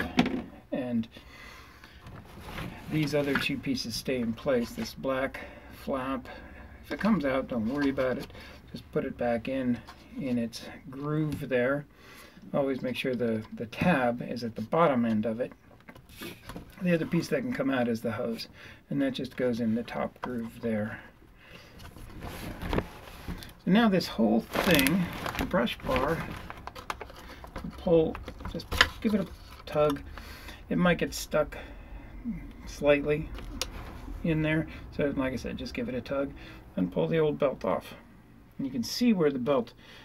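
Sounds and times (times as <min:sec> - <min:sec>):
faint room noise: 0:00.0 - 0:40.0
man speaking: 0:23.6 - 0:26.4, 0:32.3 - 0:33.3, 0:34.2 - 0:38.0
plastic vacuum handling rumble: 0:24.4 - 0:30.1.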